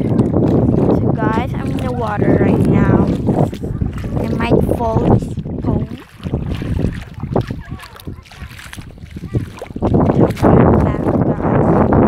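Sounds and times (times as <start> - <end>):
shallow sea water: 0.0 - 12.0
wind on microphone: 0.0 - 12.0.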